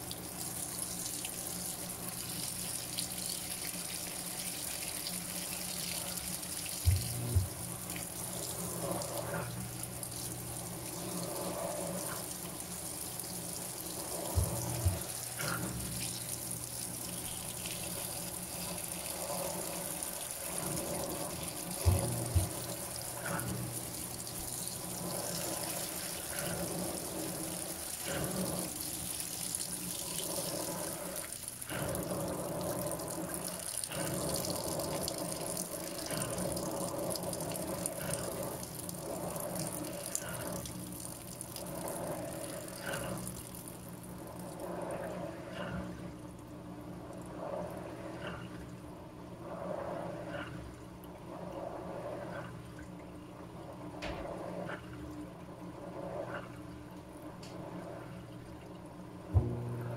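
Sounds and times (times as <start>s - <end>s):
water pouring and splashing: 0.0s - 45.2s.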